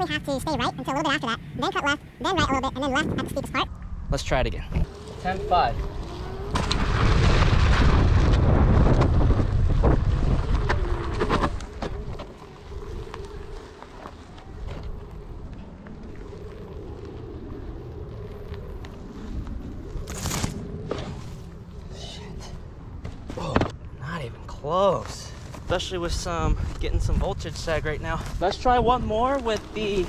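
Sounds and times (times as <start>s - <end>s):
electric motor rumble and whine: 3.7s - 23.7s.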